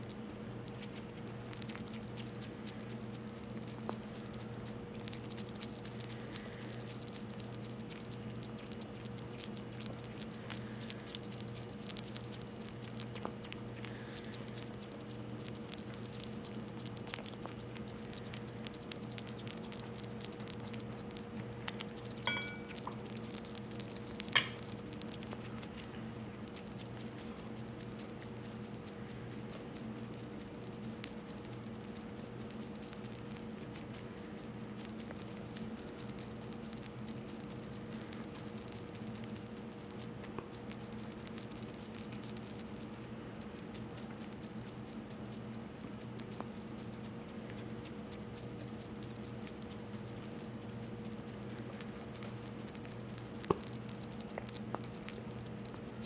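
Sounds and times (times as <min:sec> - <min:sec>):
faint electrical hum: 0:00.0 - 0:56.0
hedgehog chewing: 0:00.0 - 0:56.0.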